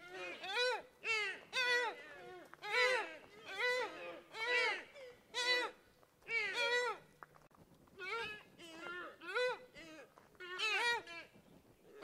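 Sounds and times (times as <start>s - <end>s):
high-pitched bleats: 0.0s - 7.0s.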